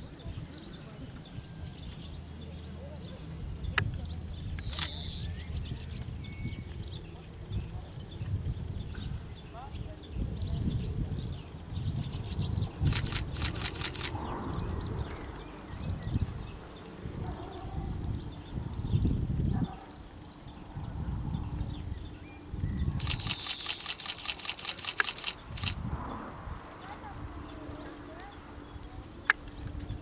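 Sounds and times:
small birds chirping: 0.1s - 25.9s
rapid camera shutter clicks: 4.6s - 5.1s, 12.8s - 14.2s, 23.0s - 25.8s.

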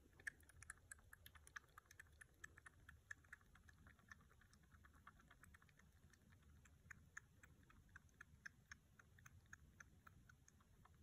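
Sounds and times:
kitten suckling wet clicks: 0.0s - 11.0s.

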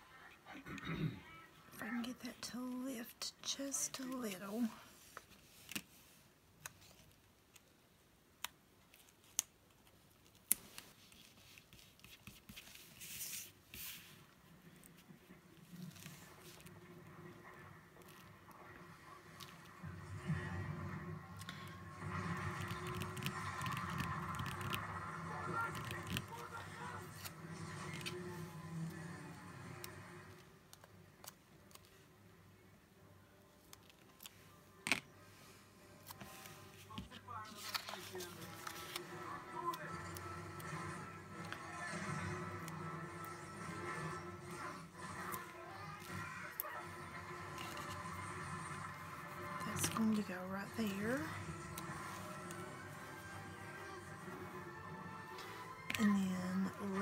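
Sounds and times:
faint background music: 0.0s - 57.0s
paper stickers peeled and pressed: 22.2s - 28.2s, 37.0s - 40.2s.

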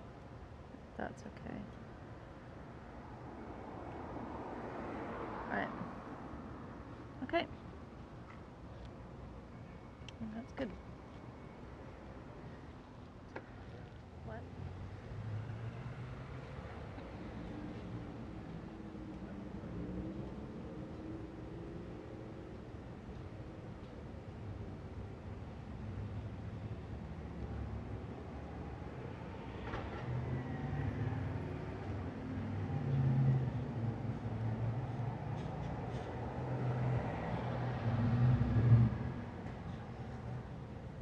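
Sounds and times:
cars passing on road: 0.0s - 41.0s.

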